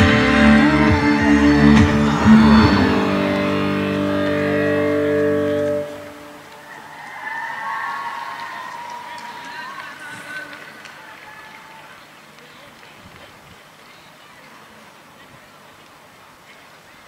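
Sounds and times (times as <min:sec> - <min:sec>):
live band playing amplified music: 0:00.0 - 0:06.4
electric guitar: 0:00.0 - 0:06.7.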